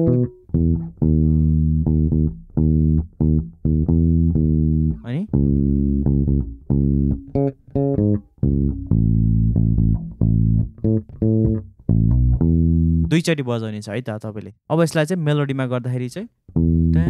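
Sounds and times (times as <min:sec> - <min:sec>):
electric bass guitar plucked: 0:00.0 - 0:13.2, 0:16.5 - 0:17.0.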